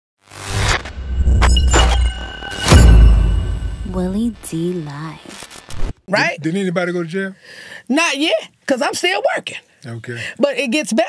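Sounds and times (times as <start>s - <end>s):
glitchy noise sweeps: 0.2s - 6.0s
heavy low rumble: 0.8s - 4.8s.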